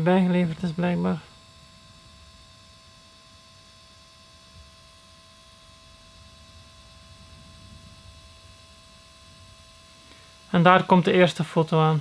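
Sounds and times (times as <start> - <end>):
photo printer humming and whirring: 0.0 - 12.0.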